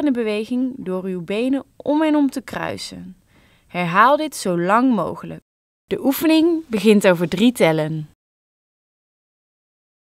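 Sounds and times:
person speaking: 0:00.0 - 0:08.2.

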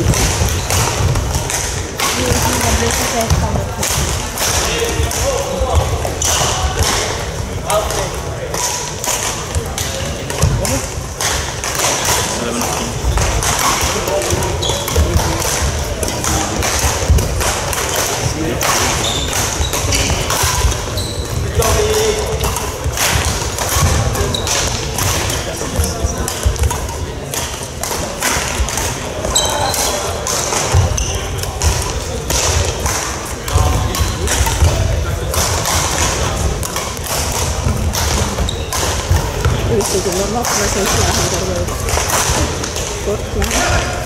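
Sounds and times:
hubbub of voices: 0:00.0 - 0:44.0
racket hitting shuttlecock: 0:00.0 - 0:44.0.

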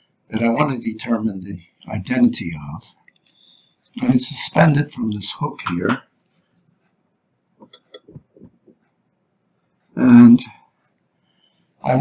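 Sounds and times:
glass cup clinking: 0:07.6 - 0:08.2.

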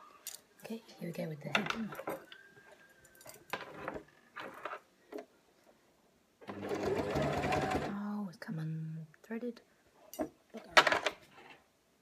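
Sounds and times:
electric sewing machine running: 0:06.5 - 0:07.9.

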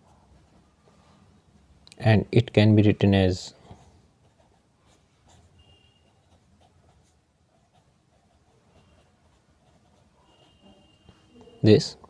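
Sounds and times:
marker pen writing on paper: 0:03.6 - 0:11.6.

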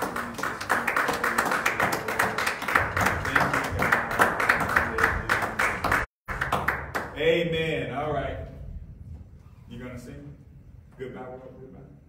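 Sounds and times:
hands clapping: 0:00.0 - 0:07.2.

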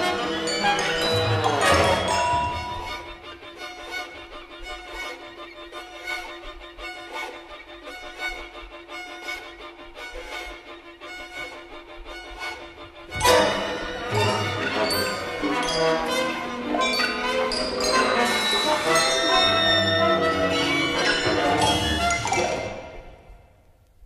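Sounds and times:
modern classical bowed strings: 0:00.0 - 0:23.1.

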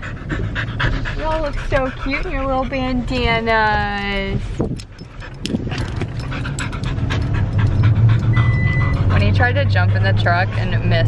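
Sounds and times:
dog panting rapidly: 0:00.0 - 0:11.0
truck engine humming: 0:00.0 - 0:11.0.

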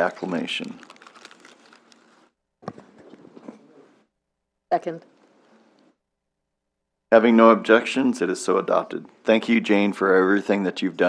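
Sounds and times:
paper rustling: 0:00.0 - 0:03.6.

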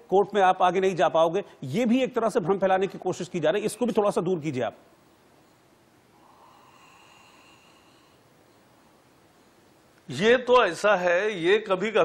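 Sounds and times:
faint breath on microphone: 0:06.2 - 0:08.6.

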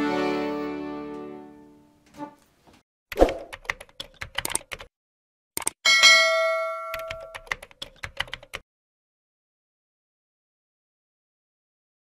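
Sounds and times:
quick clicks: 0:03.1 - 0:04.9, 0:05.6 - 0:05.8
bell ding: 0:05.8 - 0:07.4.

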